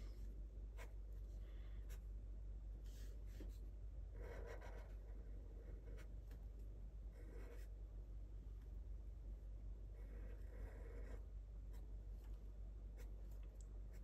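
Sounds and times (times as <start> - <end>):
marker scratching on paper: 4.2 - 6.1, 7.2 - 7.7.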